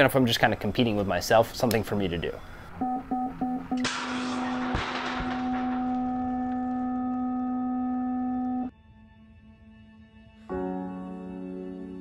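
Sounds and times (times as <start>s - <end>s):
long electronic tone: 6.0s - 8.7s.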